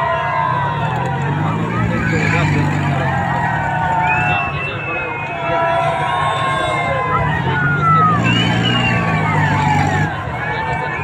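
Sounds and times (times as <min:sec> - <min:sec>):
riders shouting and crying out: 0:00.0 - 0:11.0.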